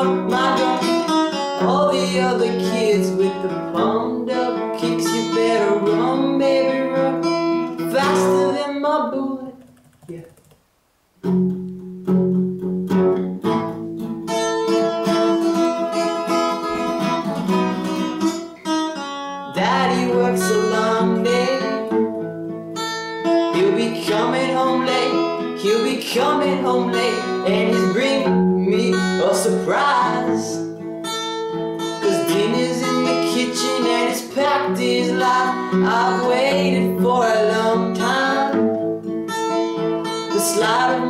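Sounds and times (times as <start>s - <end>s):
classical guitar strumming: 0.0s - 9.5s, 11.2s - 41.0s
person singing: 0.0s - 10.3s, 19.5s - 22.1s, 23.4s - 30.8s, 32.0s - 38.9s, 40.1s - 41.0s.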